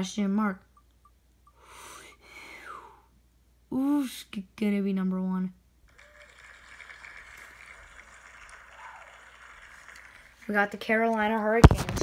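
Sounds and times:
applause sound effect from phone: 0:05.9 - 0:10.4.

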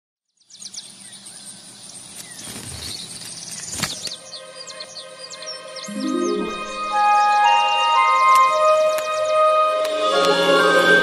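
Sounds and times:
birds chirping: 0:00.4 - 0:10.1.

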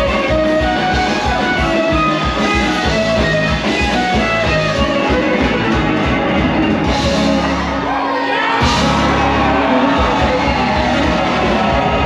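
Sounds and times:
driving drum beat: 0:00.0 - 0:07.9, 0:08.5 - 0:12.0
rock music with electric guitar: 0:00.0 - 0:12.0.

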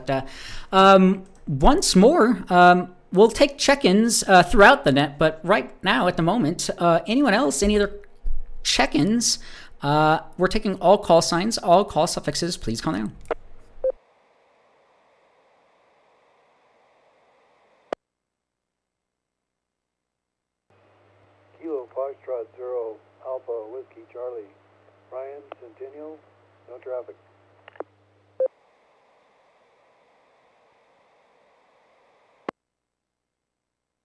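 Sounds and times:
radio channel hiss: 0:14.1 - 0:18.0, 0:21.6 - 0:27.2, 0:28.5 - 0:32.5.

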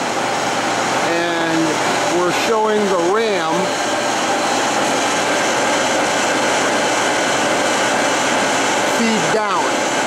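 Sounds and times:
faint machine whine: 0:00.0 - 0:10.0
lathe motor whirring: 0:00.0 - 0:10.0.

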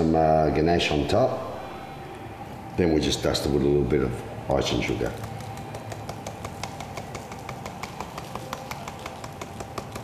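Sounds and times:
sugar duster tapping: 0:05.2 - 0:10.0.

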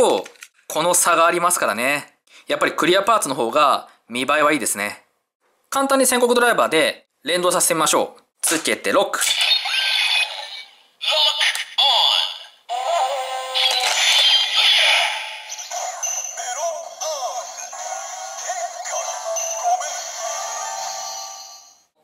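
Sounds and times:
synthesized voice calls: 0:09.2 - 0:20.7
toy belt electronic music: 0:12.7 - 0:21.4.

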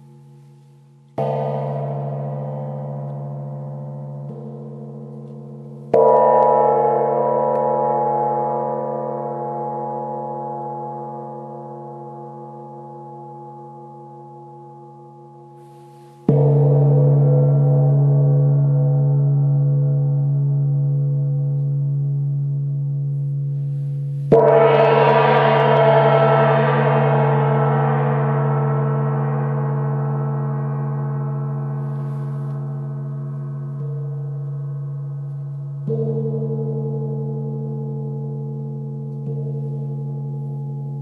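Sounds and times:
gong ringing: 0:24.0 - 0:35.0.

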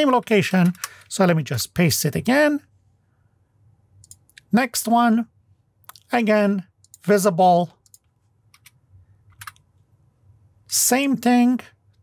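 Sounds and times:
keyboard and mouse clicks: 0:04.0 - 0:04.5, 0:07.8 - 0:09.7.

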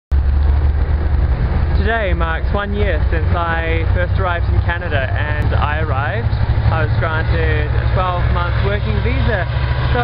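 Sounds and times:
wind buffeting microphone: 0:00.1 - 0:10.0
man speaking: 0:01.8 - 0:10.0.

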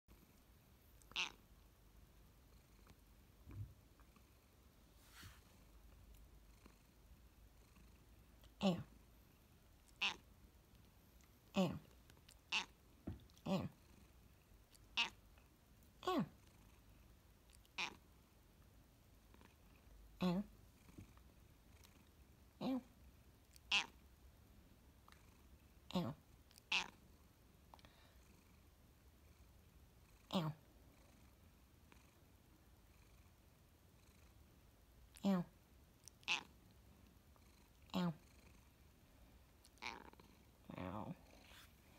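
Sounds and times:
cat purring: 0:00.1 - 0:18.1, 0:19.1 - 0:41.9
cat meowing: 0:01.1 - 0:01.4, 0:09.9 - 0:10.2, 0:12.5 - 0:12.8, 0:14.9 - 0:15.2, 0:17.6 - 0:18.0, 0:23.6 - 0:24.0, 0:26.6 - 0:27.0, 0:36.1 - 0:36.5, 0:39.7 - 0:40.2.

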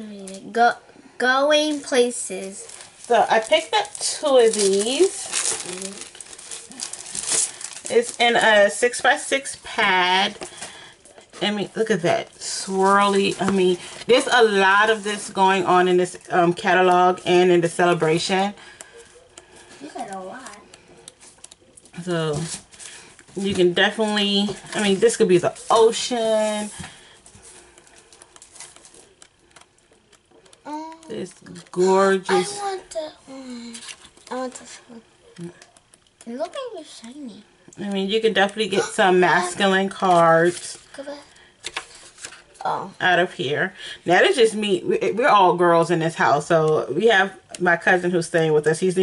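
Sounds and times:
paper and packaging crinkling: 0:01.5 - 0:37.0, 0:38.2 - 0:42.6.

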